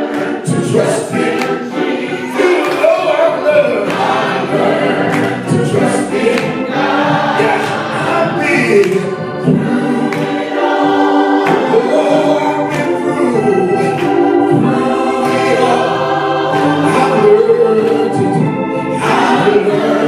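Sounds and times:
gospel singing: 0.0 - 20.0
sustained keyboard chords: 0.0 - 20.0.

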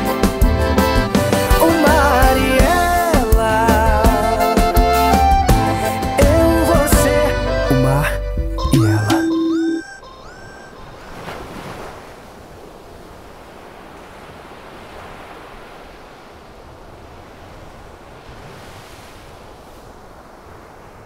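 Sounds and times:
ocean waves breaking on beach: 9.4 - 21.0.

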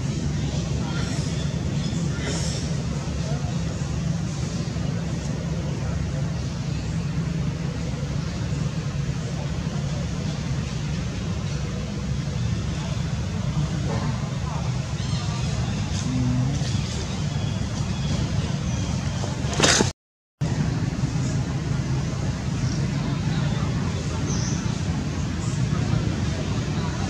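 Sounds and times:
faint voices: 0.0 - 19.8, 20.5 - 27.0
low engine rumble: 0.0 - 27.0.

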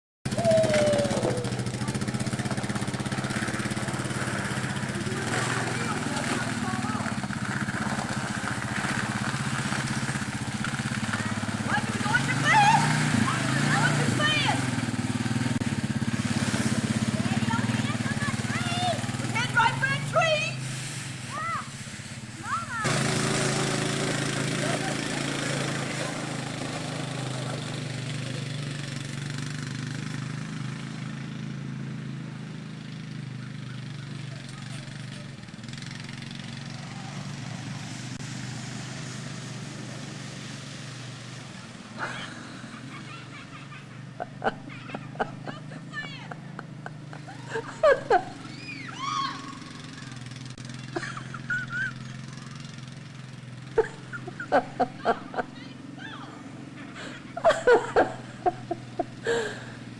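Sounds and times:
children shouting and screaming: 0.3 - 2.2, 11.1 - 14.7, 17.2 - 20.6, 21.3 - 21.8, 22.4 - 23.1, 42.1 - 46.4, 47.2 - 53.0, 55.1 - 58.0
atv engine running: 0.3 - 59.9.

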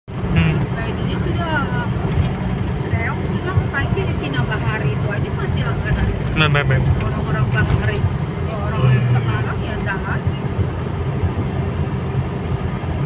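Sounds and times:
road rumble inside car: 0.1 - 13.0
people talking: 0.4 - 1.9, 2.9 - 10.5.

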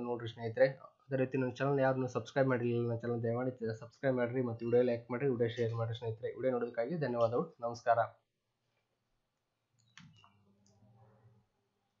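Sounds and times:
man speaking: 0.0 - 8.2.

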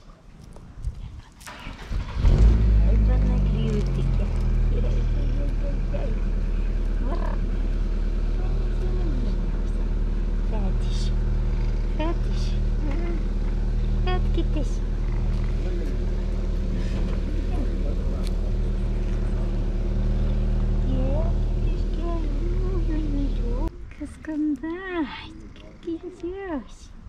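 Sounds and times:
cat purring: 8.4 - 24.2.

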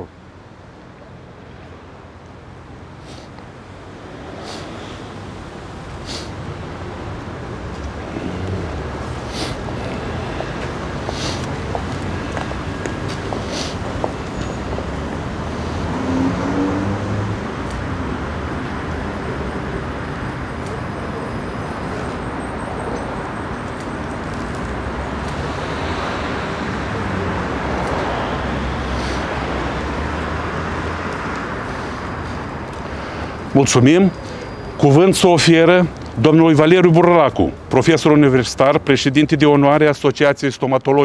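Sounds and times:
road traffic: 0.0 - 41.0.

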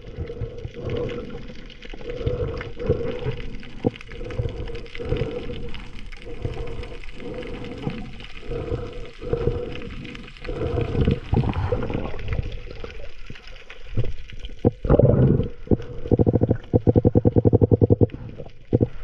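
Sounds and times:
water moving and gurgling: 0.0 - 19.0
steady hum: 15.9 - 18.8.

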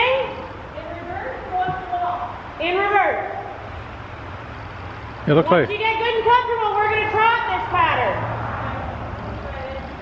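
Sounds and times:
steady background noise: 0.0 - 10.0.

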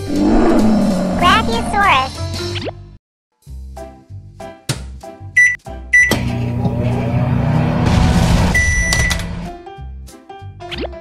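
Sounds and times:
toy microwave button beeps: 5.4 - 6.2, 8.6 - 9.2
long beep: 8.5 - 9.2.

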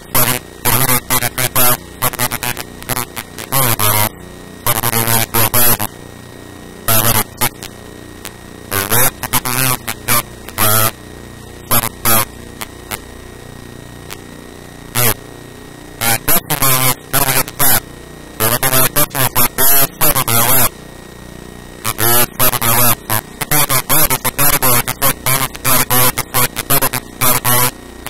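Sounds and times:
electrical mains hum: 0.0 - 28.0.

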